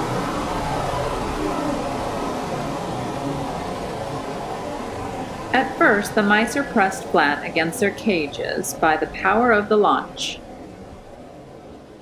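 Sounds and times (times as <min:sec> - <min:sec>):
rocket engine rumble: 0:00.0 - 0:12.0.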